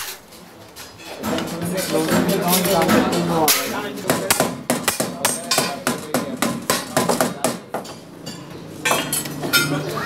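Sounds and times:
hammer striking metal: 2.0s - 9.7s.

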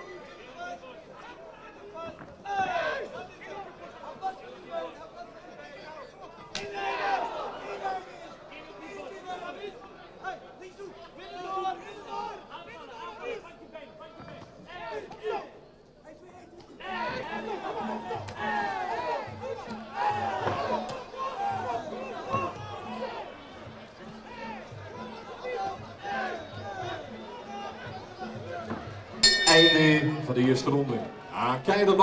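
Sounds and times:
voices chattering and calling: 0.0s - 32.0s.

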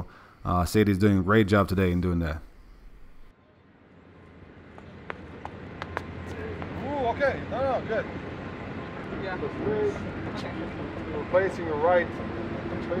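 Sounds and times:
sharp taps: 4.7s - 6.8s.

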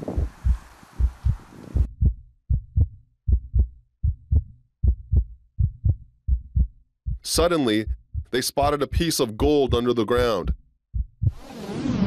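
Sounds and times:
faint hiss: 0.0s - 1.8s
heartbeat thumps: 0.0s - 11.4s.

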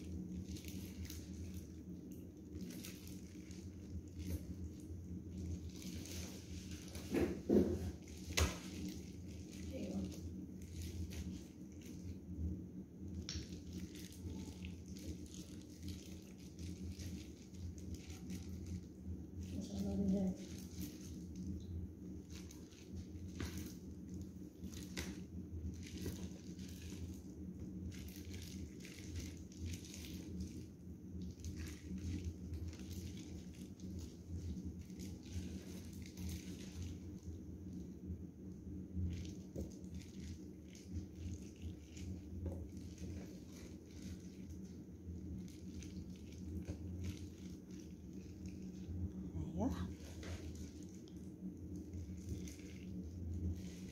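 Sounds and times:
steady low hum: 0.0s - 53.9s.

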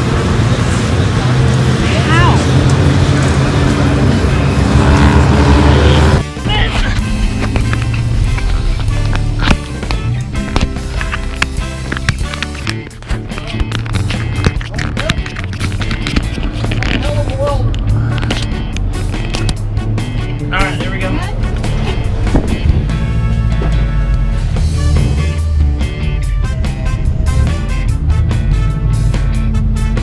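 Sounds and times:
voice: 1.2s - 2.5s, 5.8s - 7.0s, 16.9s - 17.8s, 20.5s - 21.4s
music with steady beat: 6.1s - 16.8s, 17.8s - 30.0s.

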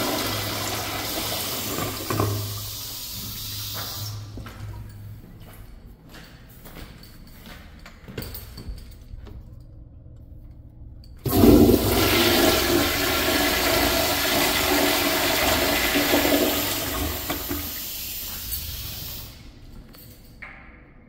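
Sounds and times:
toilet flushing: 0.0s - 4.4s, 11.2s - 19.5s.

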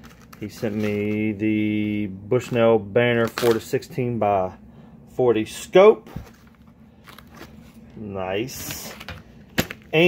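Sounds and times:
handling clicks and rustles: 0.0s - 1.4s.

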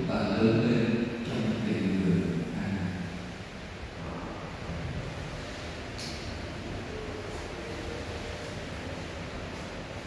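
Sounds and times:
church room hiss: 0.0s - 10.0s.

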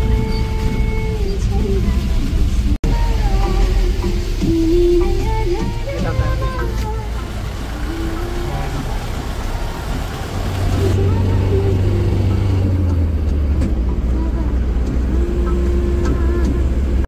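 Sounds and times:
car engine and road noise: 0.0s - 17.0s.

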